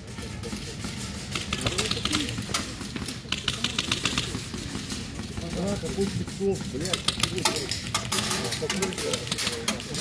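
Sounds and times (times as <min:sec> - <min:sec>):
airsoft guns firing in bursts: 0:00.7 - 0:07.5.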